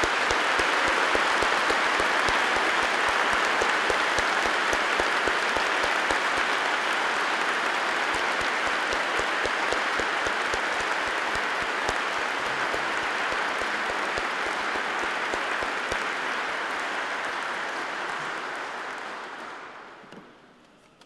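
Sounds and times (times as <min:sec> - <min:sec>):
congregation applauding: 0:00.0 - 0:20.5.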